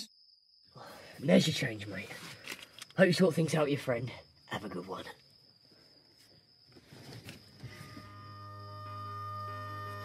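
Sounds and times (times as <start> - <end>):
sustained music tones: 7.7 - 10.0.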